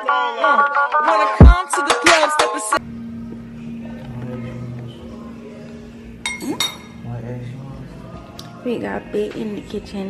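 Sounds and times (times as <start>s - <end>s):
glass bowl clinking: 6.2s - 7.0s.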